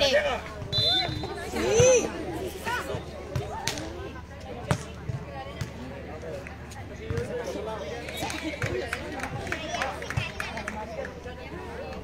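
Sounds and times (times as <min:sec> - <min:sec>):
volleyball slapped by hands: 0:03.4 - 0:03.9.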